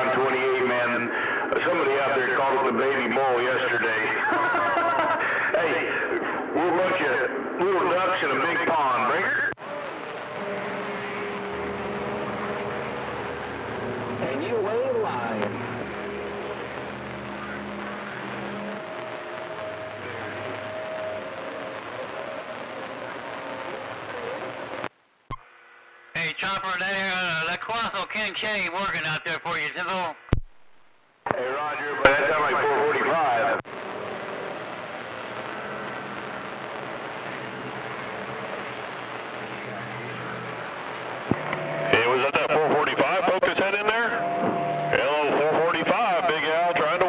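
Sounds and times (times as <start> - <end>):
radio static: 0.0 - 25.4, 26.1 - 47.0
radio warble: 0.0 - 25.4, 26.2 - 47.0
garbled radio voices: 14.2 - 24.9, 26.2 - 30.3, 31.3 - 33.7, 38.7 - 47.0.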